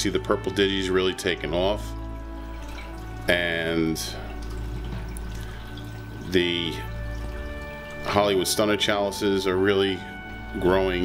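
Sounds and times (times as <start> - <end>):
aquarium water washing: 0.0 - 11.0
faint background music: 0.0 - 11.0.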